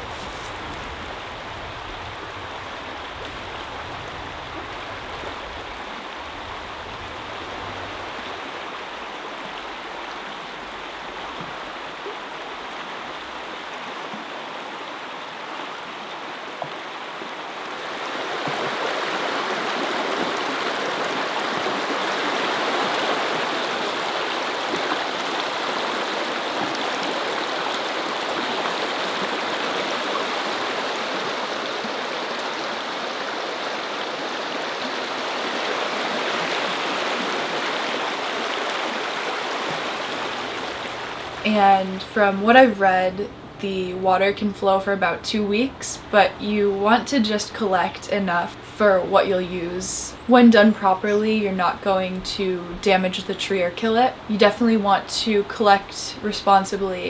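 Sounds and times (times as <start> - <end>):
brook flowing over stones: 0.0 - 44.0.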